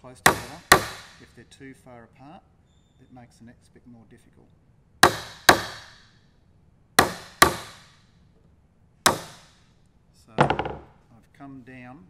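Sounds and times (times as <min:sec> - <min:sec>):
hammer striking wood chisel: 0:00.1 - 0:01.4, 0:05.0 - 0:06.2, 0:07.0 - 0:08.0, 0:09.1 - 0:09.6, 0:10.4 - 0:11.0.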